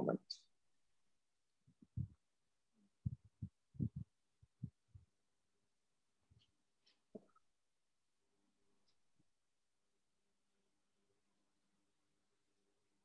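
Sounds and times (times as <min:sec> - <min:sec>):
faint dull low thumps: 0:03.0 - 0:05.1.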